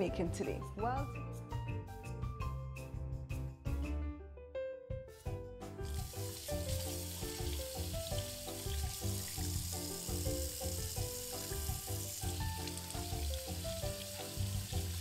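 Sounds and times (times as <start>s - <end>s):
background music with steady beat: 0.0s - 15.0s
tap water splashing in sink: 5.9s - 15.0s.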